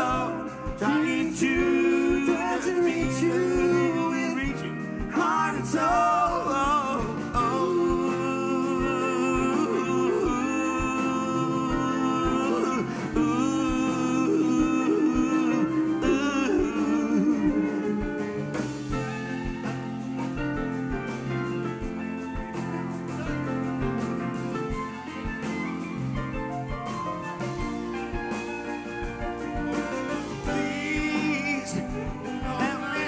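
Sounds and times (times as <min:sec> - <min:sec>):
backing vocalists: 0:00.0 - 0:19.4, 0:30.1 - 0:33.0
lead singer singing: 0:00.0 - 0:19.8, 0:29.6 - 0:33.0
drums beat: 0:00.0 - 0:33.0
guitars: 0:00.0 - 0:33.0
piano: 0:00.0 - 0:33.0.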